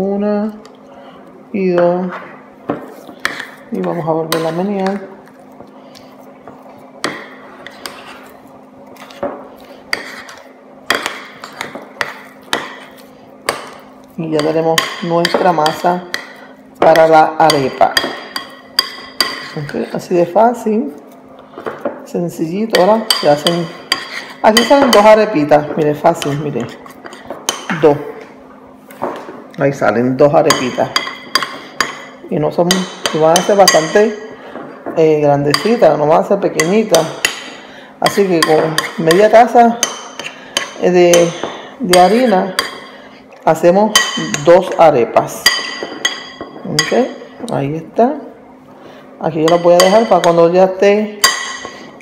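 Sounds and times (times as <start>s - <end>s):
utensil stirring dough: 1.6s - 52.0s
utensil clinking against ceramic bowl: 45.4s - 47.1s, 51.2s - 51.8s.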